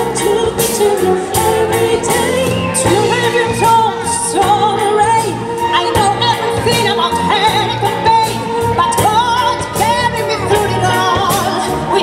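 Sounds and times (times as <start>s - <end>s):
drum beats: 0.0s - 12.0s
live band playing: 0.0s - 12.0s
woman singing with vibrato: 0.0s - 12.0s.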